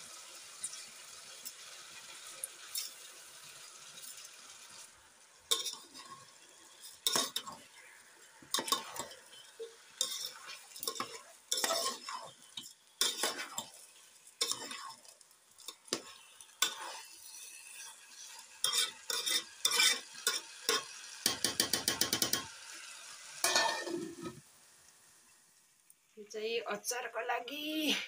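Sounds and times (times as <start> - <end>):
spoon stirring in a steel pot: 5.5 - 13.8, 14.4 - 22.5
steel plate set on pot: 23.4 - 24.4.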